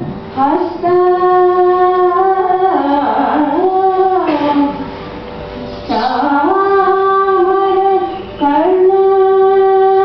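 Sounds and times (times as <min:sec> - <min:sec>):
steady drone: 0:00.0 - 0:10.0
woman singing with sliding notes: 0:00.0 - 0:10.0.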